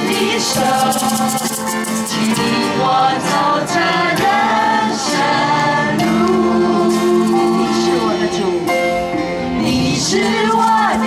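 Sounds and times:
women singing gospel: 0.0 - 7.8, 9.5 - 11.0
light musical accompaniment: 0.0 - 11.0.

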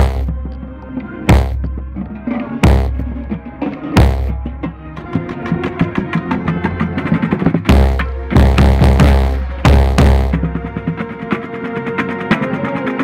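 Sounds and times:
fast drumming: 0.0 - 0.4, 1.3 - 1.8, 2.6 - 3.2, 4.0 - 4.4, 5.1 - 11.0
heavy bass drum strokes: 0.0 - 0.5, 1.3 - 2.0, 2.6 - 3.3, 4.0 - 4.4, 7.7 - 10.8
marching band music: 0.0 - 0.7, 1.3 - 6.3, 7.0 - 12.2.

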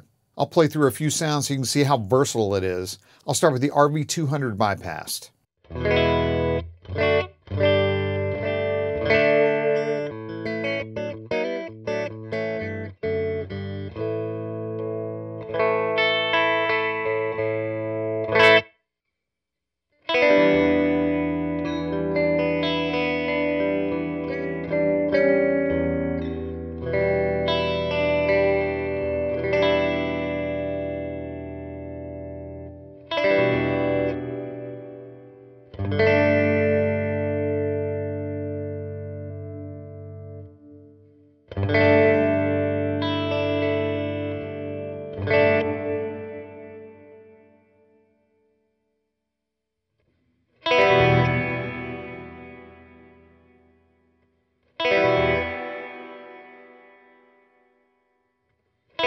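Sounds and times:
electric guitar notes and chords: 5.6 - 18.7, 20.1 - 48.2, 50.6 - 54.1, 54.8 - 57.8.

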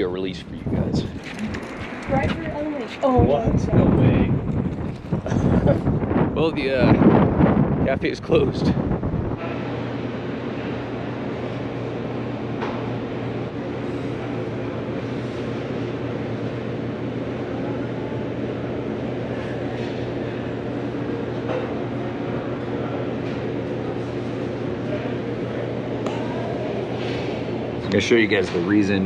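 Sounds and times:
machinery hum: 0.0 - 29.0.

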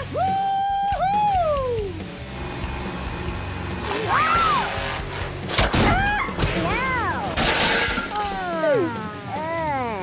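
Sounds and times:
monster truck engine running: 2.2 - 5.5.

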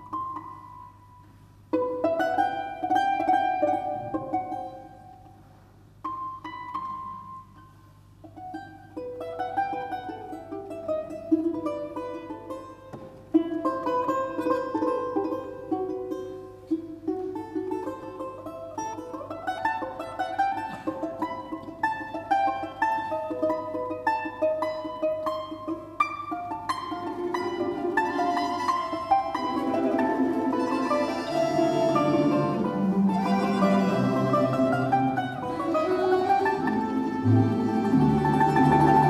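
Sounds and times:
folk instrument orchestra: 0.0 - 7.7, 8.3 - 39.0
balalaika tremolo melody: 0.0 - 39.0.

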